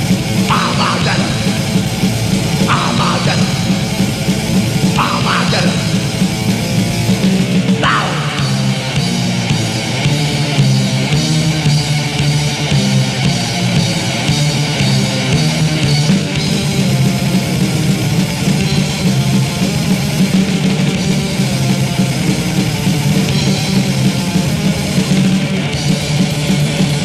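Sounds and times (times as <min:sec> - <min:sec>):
heavy metal band playing: 0:00.0 - 0:27.0.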